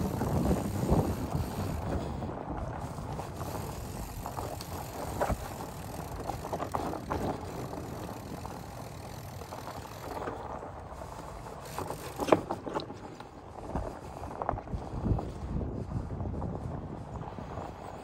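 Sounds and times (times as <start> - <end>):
bike tyres rolling on sandy trail: 0.0 - 18.0
short clicks and crackles: 2.9 - 10.4.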